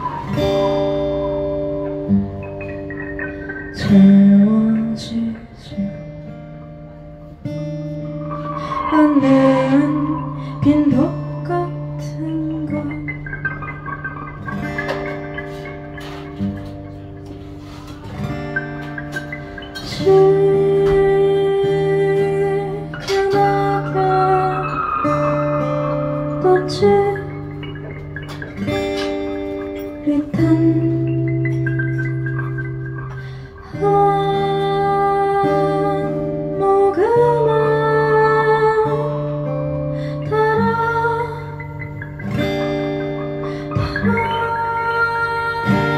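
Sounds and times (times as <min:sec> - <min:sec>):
acoustic guitar chords strummed: 0:00.0 - 0:45.9.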